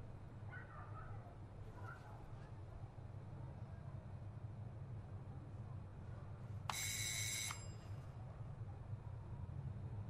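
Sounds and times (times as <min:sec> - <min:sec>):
electric doorbell ringing: 0:06.7 - 0:07.6.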